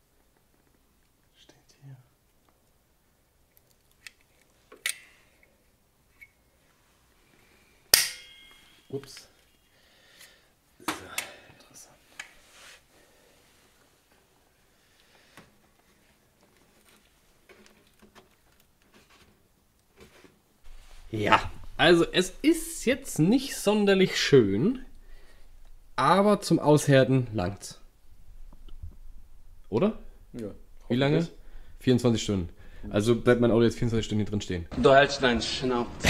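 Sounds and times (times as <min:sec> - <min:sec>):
plastic crackle: 0:16.3 - 0:21.8.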